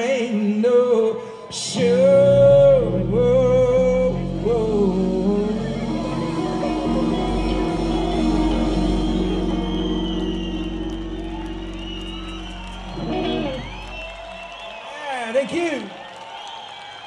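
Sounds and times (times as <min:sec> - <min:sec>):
crowd cheering and whistling: 0:00.9 - 0:17.0
rock band final chord: 0:04.0 - 0:13.9.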